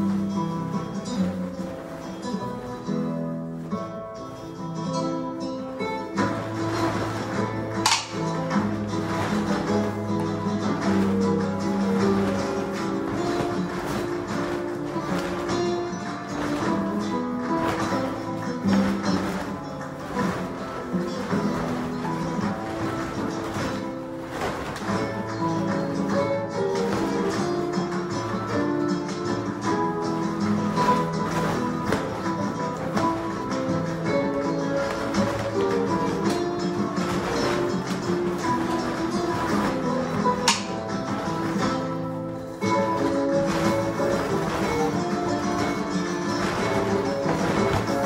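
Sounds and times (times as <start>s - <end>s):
flamenco guitar music: 0.0s - 48.0s
sharp crack: 6.6s - 26.2s.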